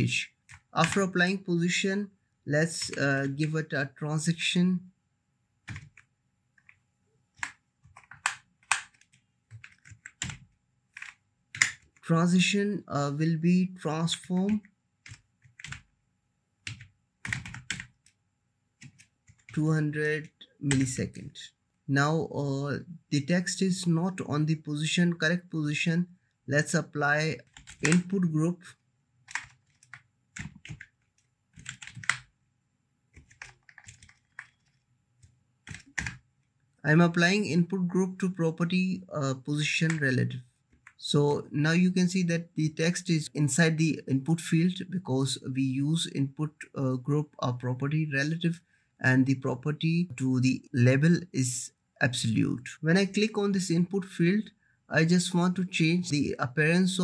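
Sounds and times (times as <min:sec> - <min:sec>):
computer keyboard typing: 0:00.4 - 0:01.2, 0:02.7 - 0:03.6, 0:05.7 - 0:06.8, 0:07.4 - 0:12.0, 0:14.2 - 0:15.9, 0:16.6 - 0:18.0, 0:18.8 - 0:19.6, 0:20.7 - 0:21.0, 0:27.4 - 0:28.2, 0:29.3 - 0:32.3, 0:33.1 - 0:36.2.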